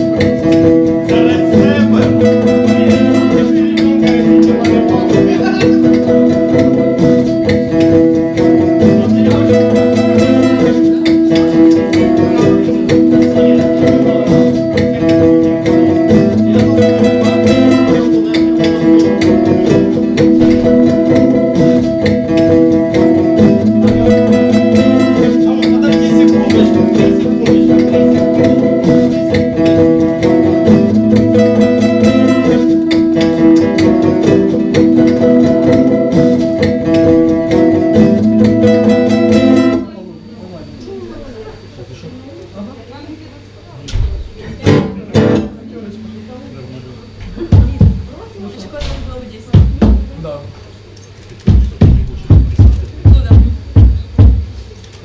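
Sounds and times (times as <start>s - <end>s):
acoustic guitar strummed fast: 0.0s - 40.0s, 44.6s - 46.8s.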